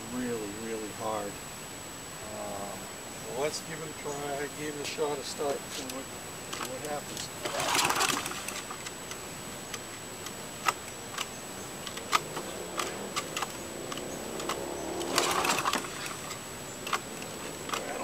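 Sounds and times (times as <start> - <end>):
lawn mower engine running: 4.8 - 18.0
sharp clicks: 5.8 - 18.0.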